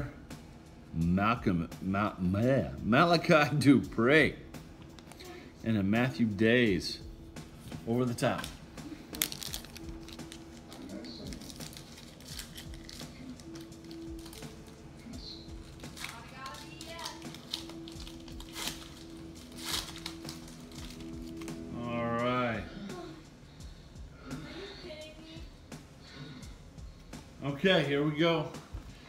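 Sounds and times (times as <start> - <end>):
steady low background tone: 0.0 - 29.0
trading cards clicking: 4.9 - 5.3, 8.2 - 14.9, 15.5 - 21.6
pack wrappers crinkling: 8.2 - 21.7.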